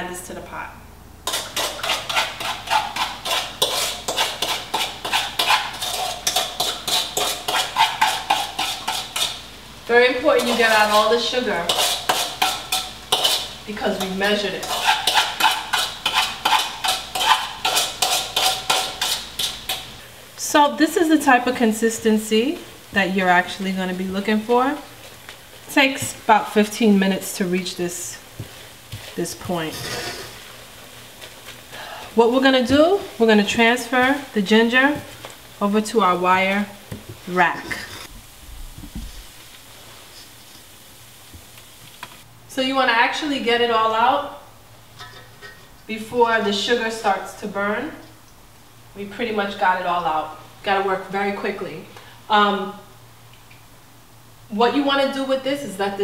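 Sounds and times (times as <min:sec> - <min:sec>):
spoon scraping and tapping a bowl: 0:01.3 - 0:09.4, 0:11.7 - 0:19.8
syrup sizzling in a skillet: 0:01.3 - 0:20.4, 0:21.0 - 0:42.3.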